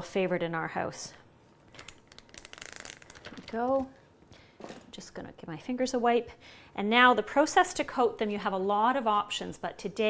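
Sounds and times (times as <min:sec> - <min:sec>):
plastic bag crinkling: 0:01.6 - 0:04.0.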